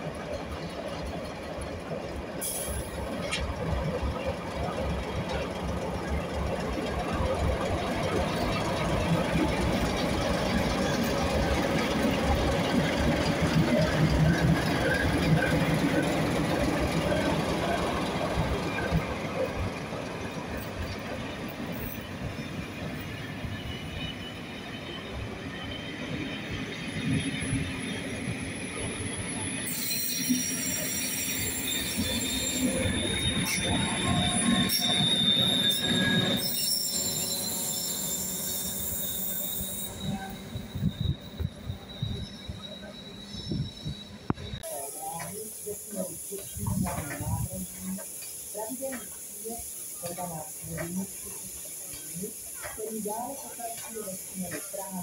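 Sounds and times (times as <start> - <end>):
diesel locomotives rumbling: 0.0 - 55.0
train coaches rolling by: 0.0 - 55.0
high-pitched wheel squeal: 23.4 - 45.1.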